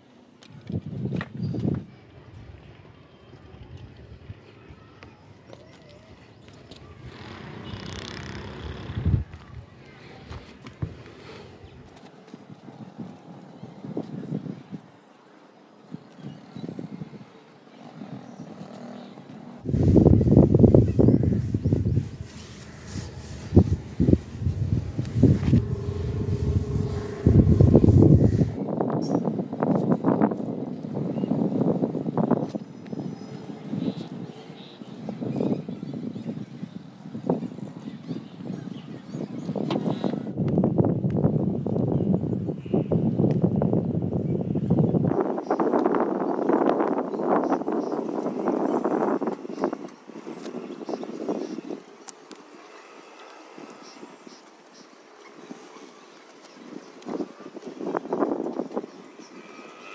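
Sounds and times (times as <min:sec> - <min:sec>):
wind buffeting microphone: 0:00.5 - 0:04.8, 0:06.3 - 0:15.1, 0:15.8 - 0:59.9
cloth scrubbing glass panel: 0:19.7 - 0:28.6.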